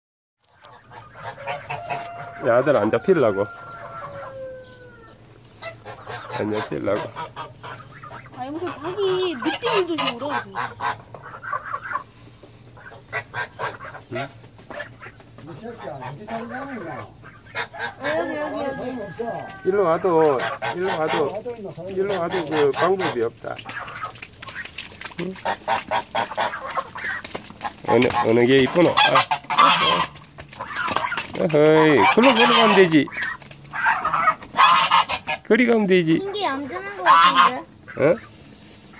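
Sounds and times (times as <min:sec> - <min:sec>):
geese honking: 0:00.4 - 0:38.9
rooster crowing: 0:01.4 - 0:05.2, 0:17.7 - 0:20.1.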